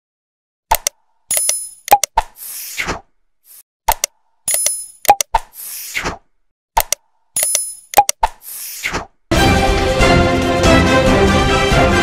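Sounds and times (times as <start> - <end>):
sharp clicks: 0.7 - 2.4, 3.9 - 5.6, 6.8 - 8.5.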